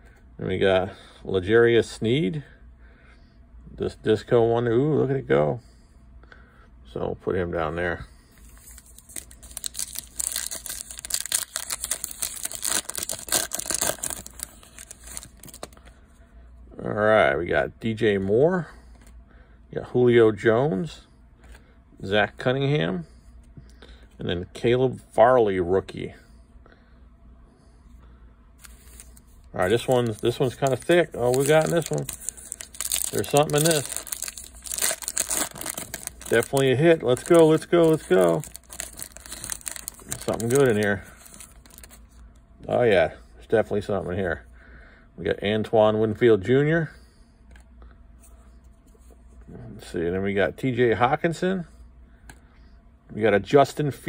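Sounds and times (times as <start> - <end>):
foil pack tearing and crinkling: 8.6 - 15.8, 28.6 - 42.0.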